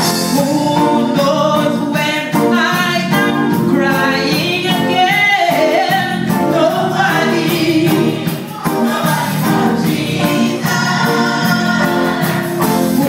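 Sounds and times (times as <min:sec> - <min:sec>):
steady beat: 0:03.1 - 0:13.0
church choir singing: 0:04.9 - 0:13.0.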